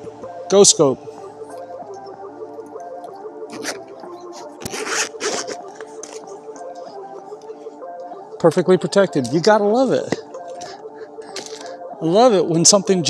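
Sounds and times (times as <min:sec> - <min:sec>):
background music: 0:00.0 - 0:13.0
zipper pulled open: 0:03.5 - 0:03.9, 0:04.6 - 0:06.2.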